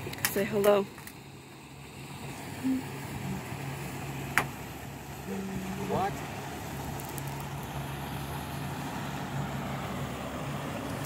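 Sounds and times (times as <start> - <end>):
motorboat engine humming: 0.0 - 11.0.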